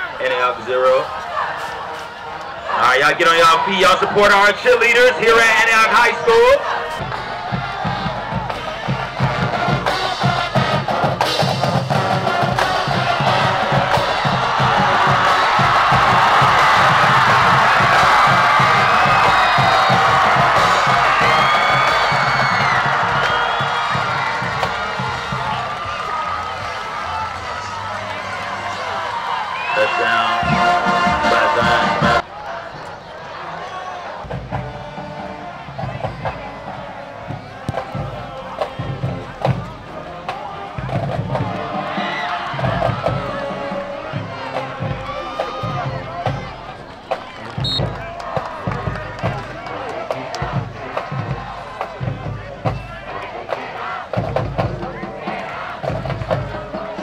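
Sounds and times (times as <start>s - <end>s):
crowd cheering and shouting: 0.0s - 57.0s
music with a steady beat: 7.0s - 25.7s.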